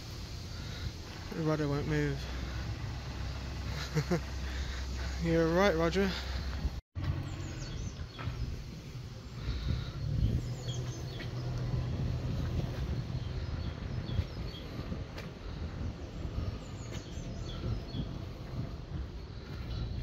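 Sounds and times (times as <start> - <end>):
steady low rumble: 0.0 - 20.0
small birds chirping: 0.1 - 20.0.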